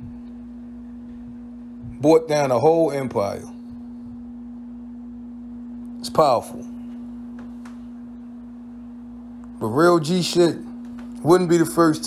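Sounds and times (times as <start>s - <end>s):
faint low rumble: 0.0s - 6.0s
steady low hum: 0.0s - 12.0s.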